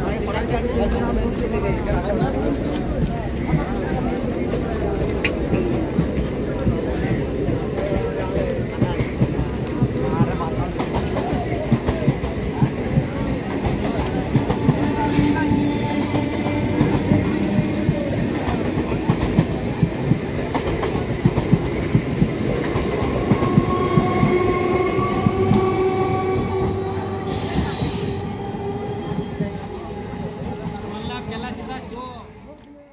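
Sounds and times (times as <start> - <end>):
train wheels squealing: 23.5 - 31.4.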